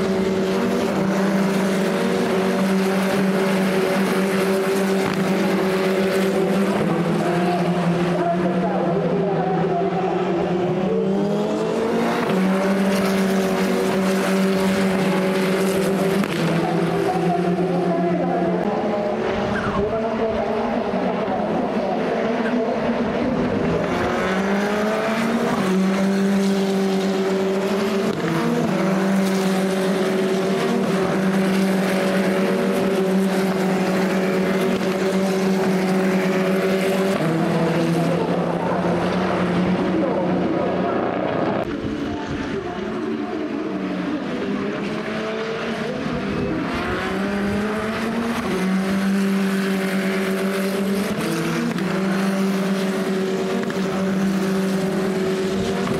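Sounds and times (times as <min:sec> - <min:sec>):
race car engines at high revs: 0:00.0 - 0:55.9.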